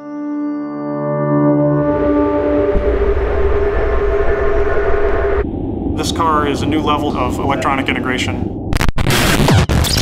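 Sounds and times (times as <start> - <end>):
droning tone: 1.2 - 8.8
loud low rumble: 1.7 - 9.0.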